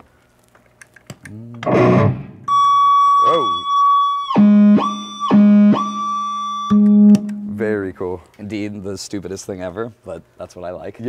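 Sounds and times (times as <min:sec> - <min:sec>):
high-pitched guitar feedback tone: 0:01.6 - 0:07.7.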